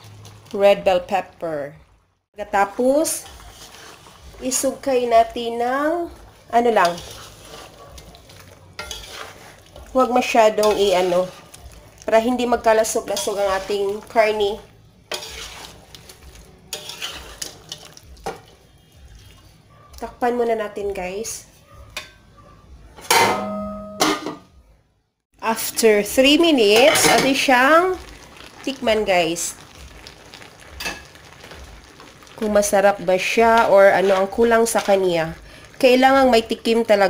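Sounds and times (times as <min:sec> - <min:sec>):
stew sizzling: 0:00.0 - 0:21.6, 0:25.4 - 0:37.0
utensil stirring stew in a pan: 0:02.5 - 0:19.7, 0:26.4 - 0:37.0
metal pot lid clanging: 0:23.0 - 0:24.5, 0:26.7 - 0:27.5.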